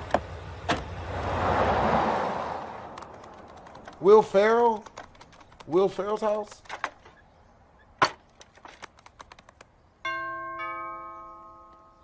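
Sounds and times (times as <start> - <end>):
two-note doorbell chime: 10.1 - 12.0.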